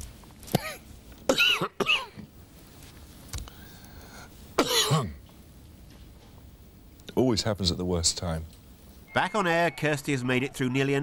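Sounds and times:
man coughing: 0:04.6 - 0:05.2.

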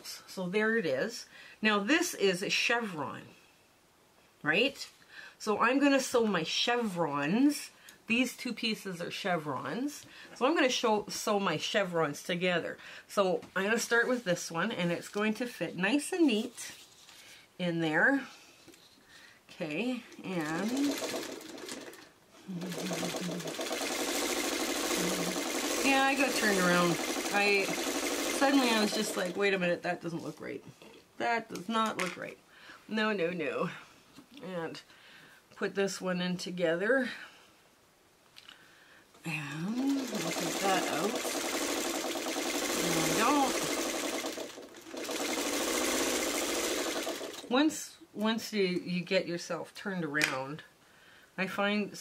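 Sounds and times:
sewing machine stitching: 0:20.2 - 0:29.6, 0:39.8 - 0:47.5.

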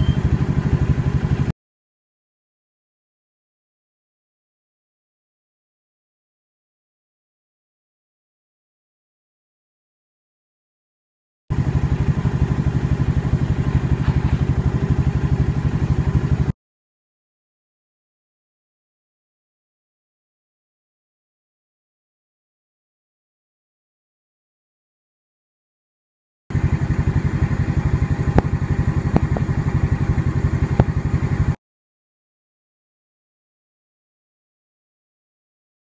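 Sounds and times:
motorcycle engine idling: 0:00.0 - 0:01.5, 0:11.5 - 0:16.5, 0:26.5 - 0:31.6.

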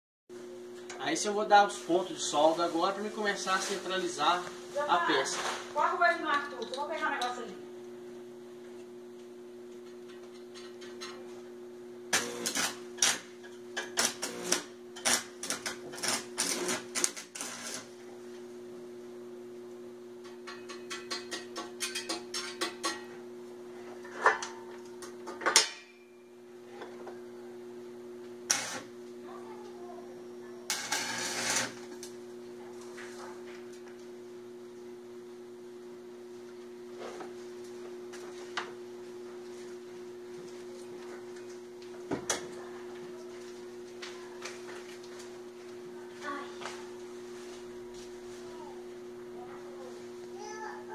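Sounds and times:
steady electrical hum: 0:00.3 - 0:50.9
arc welding crackle and clicks: 0:12.1 - 0:18.4, 0:28.4 - 0:29.2, 0:30.7 - 0:34.1.

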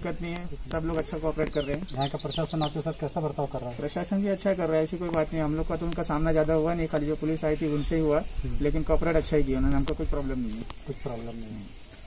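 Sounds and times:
man talking: 0:00.0 - 0:11.8.

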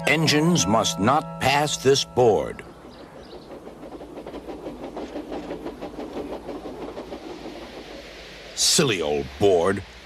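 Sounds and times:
small train running on track: 0:00.0 - 0:10.0.

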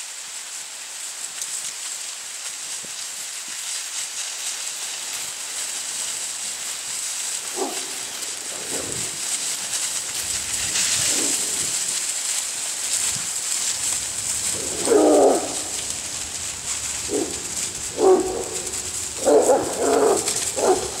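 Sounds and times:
dry leaves rustling: 0:00.0 - 0:21.0
puppies barking and baying: 0:07.5 - 0:09.0, 0:13.7 - 0:21.0.

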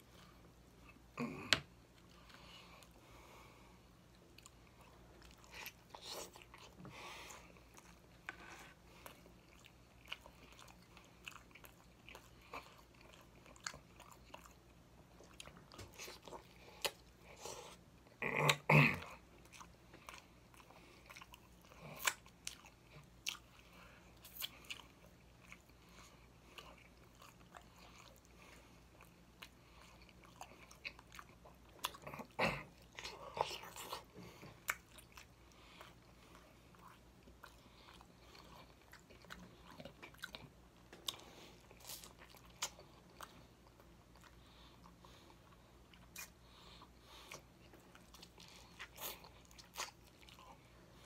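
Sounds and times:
wet chewing: 0:19.4 - 0:51.0.

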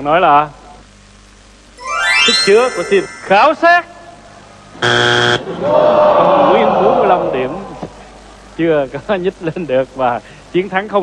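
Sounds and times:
wrong-answer buzzer: 0:04.8 - 0:05.5.

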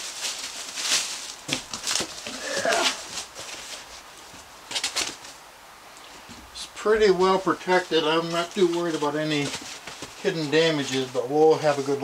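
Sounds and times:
packing foam rustling and scraping: 0:00.0 - 0:05.4, 0:06.8 - 0:12.0.

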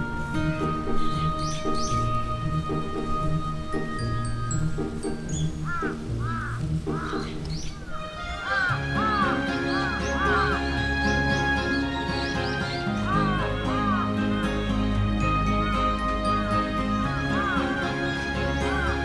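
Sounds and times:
background music with low beat: 0:00.0 - 0:07.8.

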